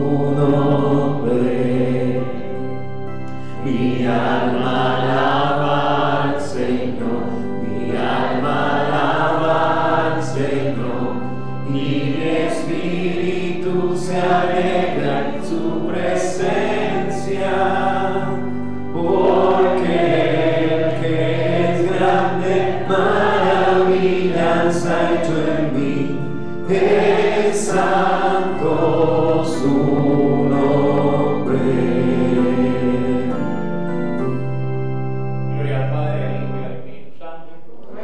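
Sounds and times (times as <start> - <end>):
voices singing a hymn: 0.0 - 36.9
low steady accompaniment: 0.0 - 38.0.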